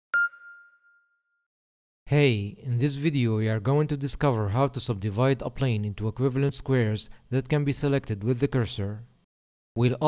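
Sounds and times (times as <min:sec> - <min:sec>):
bright chime ding: 0:00.1 - 0:01.4.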